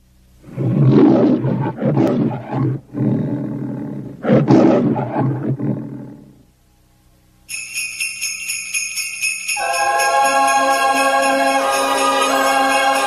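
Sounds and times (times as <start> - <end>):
lion roaring: 0.4 - 6.4.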